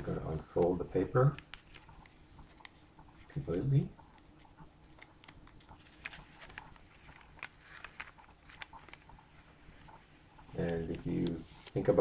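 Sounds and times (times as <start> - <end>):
paper crinkling: 0.0 - 12.0.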